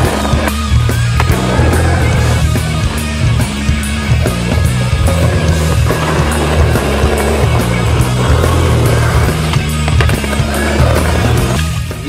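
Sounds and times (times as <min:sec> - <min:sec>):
music with stepping bass line: 0:00.0 - 0:12.0
skateboard wheels on concrete: 0:00.0 - 0:12.0
skateboard knocks: 0:01.2 - 0:01.6, 0:05.9 - 0:11.6.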